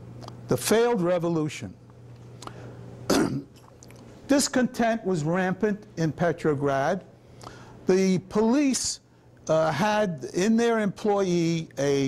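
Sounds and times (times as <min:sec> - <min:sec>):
low steady hum: 0:00.0 - 0:12.0
man clearing throat cough: 0:03.1 - 0:03.5.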